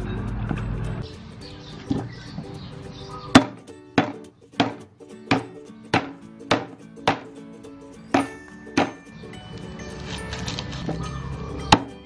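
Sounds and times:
cleaver chopping on wooden block: 0:03.3 - 0:07.3, 0:08.1 - 0:09.0, 0:11.7 - 0:11.9.

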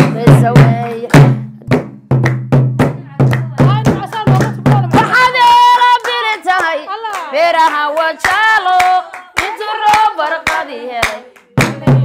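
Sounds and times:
women singing: 0:00.0 - 0:01.3, 0:02.9 - 0:12.0
deep low drum beat: 0:00.0 - 0:05.1, 0:11.6 - 0:12.0
hand claps: 0:00.0 - 0:12.0.

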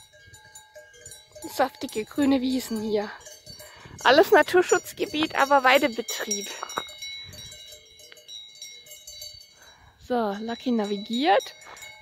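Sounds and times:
cowbells ringing: 0:00.0 - 0:12.0.

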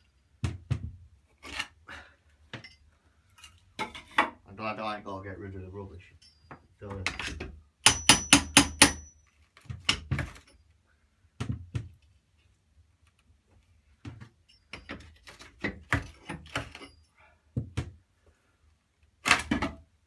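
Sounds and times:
hammer striking chisel on tiles: 0:07.1 - 0:09.2.

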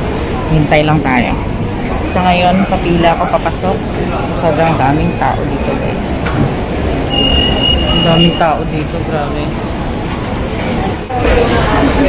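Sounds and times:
crowd hubbub indoors: 0:00.0 - 0:12.0
steady high-pitched tone: 0:07.0 - 0:08.6.

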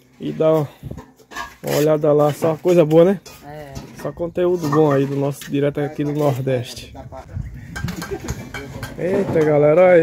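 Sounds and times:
faint background voices: 0:03.3 - 0:10.0.

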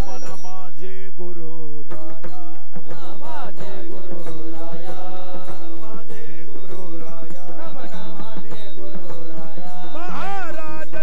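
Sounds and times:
chorus singing: 0:00.0 - 0:11.0
man leading devotional chant: 0:00.0 - 0:11.0.

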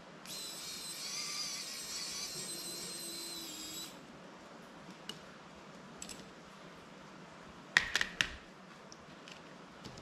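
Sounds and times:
electric screwdriver whine: 0:00.2 - 0:04.0.

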